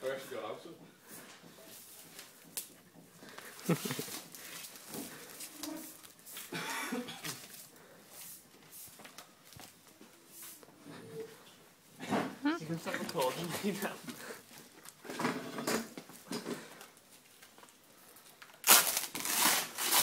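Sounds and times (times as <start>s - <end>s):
rustling and shuffling on floor: 0.0s - 20.0s.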